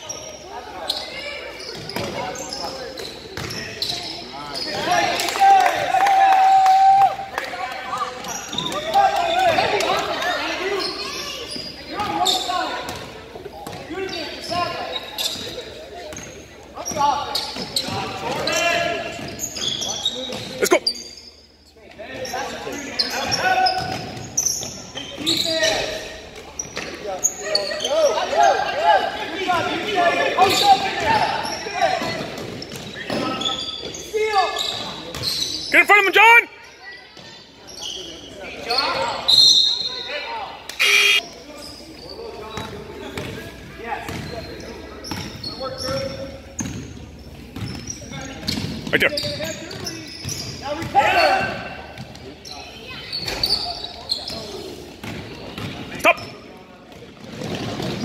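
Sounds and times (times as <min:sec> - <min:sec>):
voices shouting in gym: 0:03.6 - 0:13.1, 0:35.7 - 0:41.3, 0:50.6 - 0:54.6.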